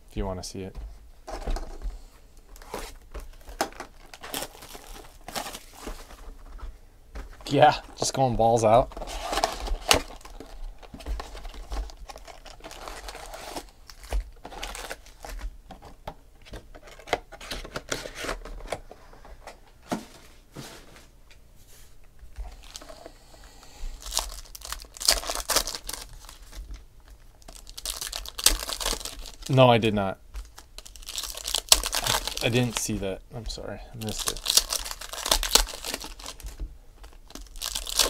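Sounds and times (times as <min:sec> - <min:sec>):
foil wrappers crinkling and tearing: 0:02.6 - 0:06.3, 0:07.4 - 0:15.5, 0:22.4 - 0:23.0, 0:23.9 - 0:33.0, 0:34.0 - 0:38.0.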